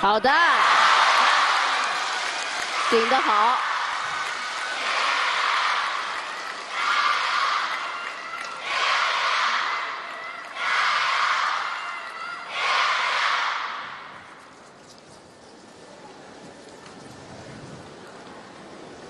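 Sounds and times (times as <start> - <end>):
crowd shouting in unison: 0.3 - 14.1.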